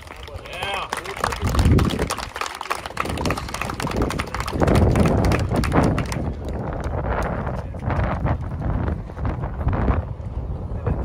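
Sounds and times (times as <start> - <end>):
group clapping: 0.0 - 8.4
wind rumbling on microphone: 0.0 - 11.0.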